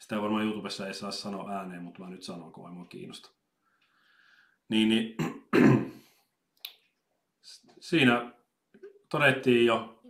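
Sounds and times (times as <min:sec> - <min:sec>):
man clearing his throat: 0:05.2 - 0:06.0.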